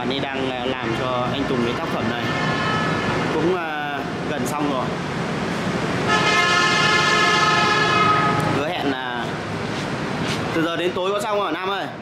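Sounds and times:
vehicle horn: 2.1 - 3.3, 6.1 - 8.6.

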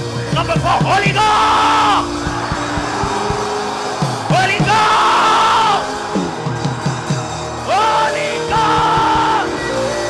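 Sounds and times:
live church band music: 0.0 - 10.0
drum hits falling in pitch: 0.5 - 10.0
loud drawn-out shout: 0.6 - 10.0.

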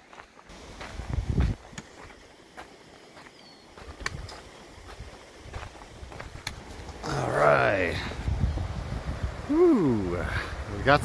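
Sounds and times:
footsteps on gravel: 0.0 - 7.0.

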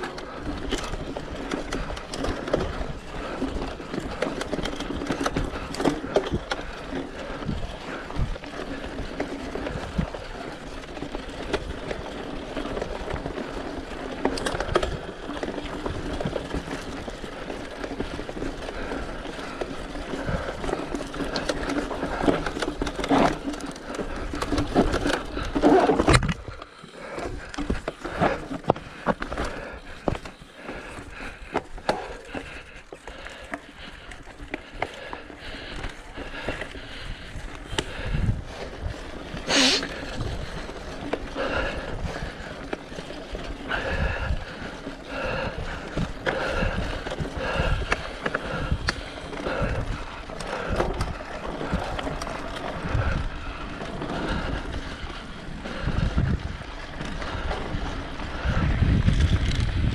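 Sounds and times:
bike rattling over bumps: 0.0 - 59.9
tyres rolling on dirt and gravel: 0.0 - 59.9.

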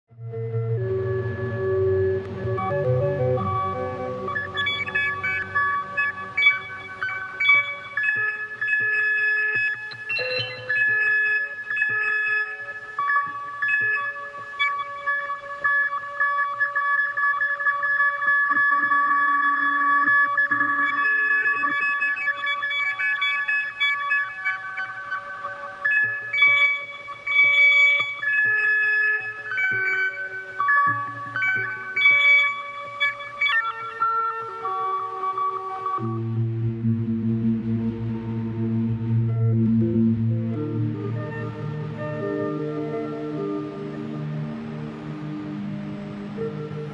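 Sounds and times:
slow electronic synth music: 0.1 - 46.9.

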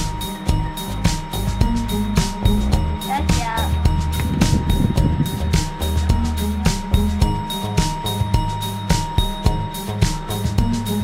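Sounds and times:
music with steady beat: 0.0 - 11.0
low rumbling noise: 0.6 - 8.9.

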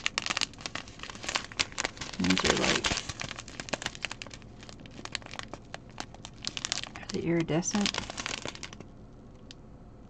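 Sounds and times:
plastic bags crinkling: 0.0 - 8.8.

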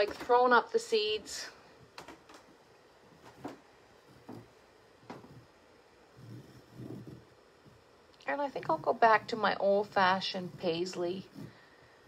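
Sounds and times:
marker tapping and scratching: 3.2 - 3.6.

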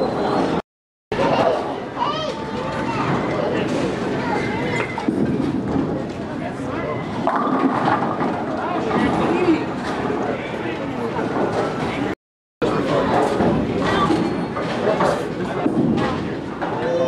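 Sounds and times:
indistinct chatter of people: 0.0 - 17.0.

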